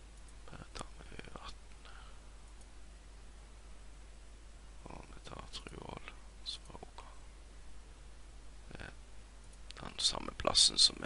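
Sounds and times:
low steady hum: 0.0s - 11.0s
faint whispered voice: 0.5s - 1.6s.

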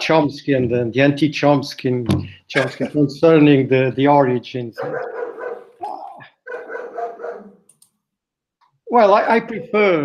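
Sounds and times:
dog howling: 4.8s - 7.6s.

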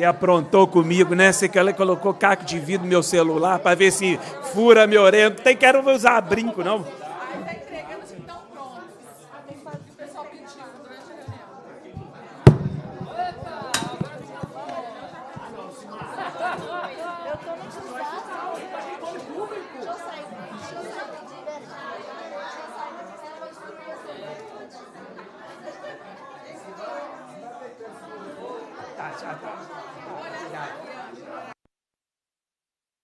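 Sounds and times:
crowd chatter: 0.0s - 31.6s.

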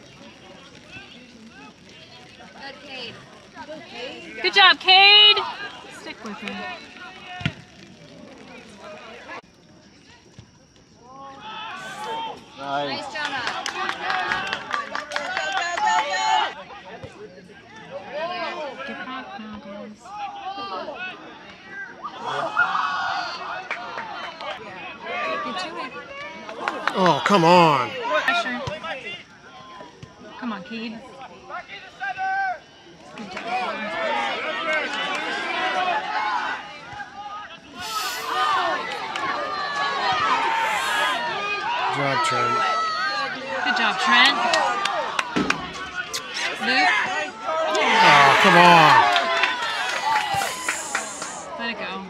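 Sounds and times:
distant voices outdoors: 0.0s - 52.0s
spectators shouting: 26.8s - 28.4s, 33.5s - 51.7s
long high yell: 47.9s - 49.1s.

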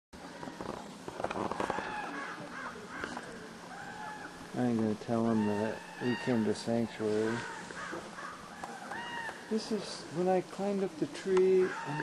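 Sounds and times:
birds calling: 0.2s - 12.0s.

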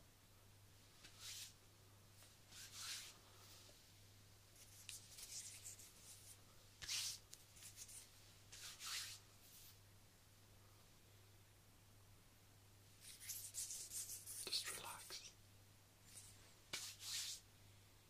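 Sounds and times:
hands rubbing and brushing: 1.0s - 1.6s, 2.2s - 3.8s, 4.6s - 9.8s, 13.0s - 15.3s, 16.0s - 17.5s.

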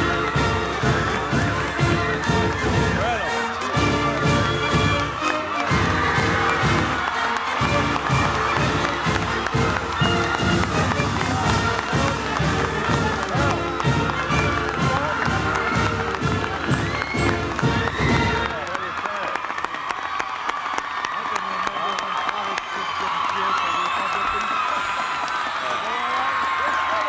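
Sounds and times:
steady drumbeat: 0.0s - 18.6s
band playing: 0.0s - 19.0s
crowd cheering: 0.0s - 27.0s.

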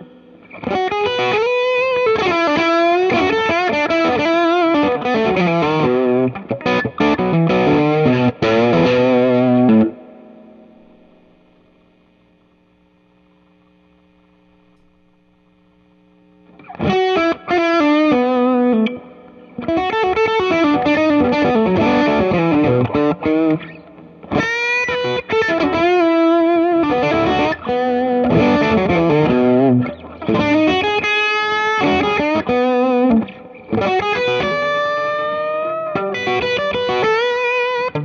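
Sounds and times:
overdriven electric guitar licks: 0.0s - 12.6s, 13.3s - 38.0s.

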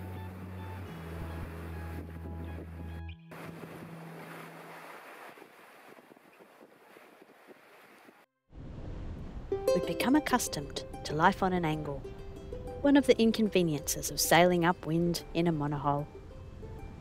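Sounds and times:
sea wash: 0.0s - 8.2s
wind on microphone: 0.4s - 9.5s
background music: 9.5s - 17.0s.

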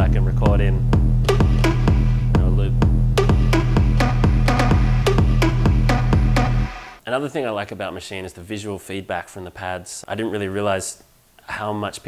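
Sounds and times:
held bass note: 0.0s - 6.8s
finger-drummed percussive hits: 0.0s - 7.0s.

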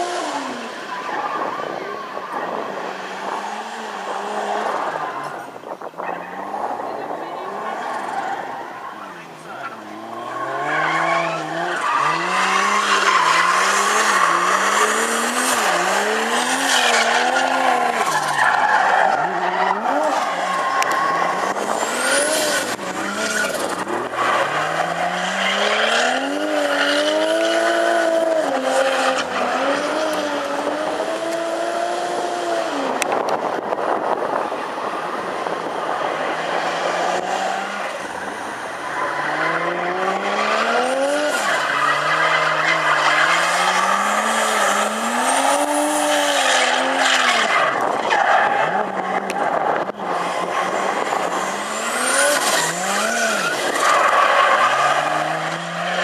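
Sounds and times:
car engine revving: 2.3s - 34.4s, 35.4s - 56.0s
tyre squeal: 9.8s - 27.8s.

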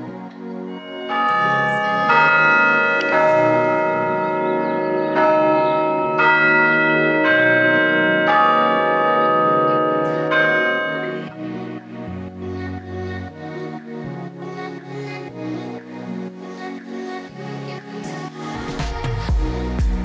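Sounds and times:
church bells ringing: 0.0s - 12.3s.

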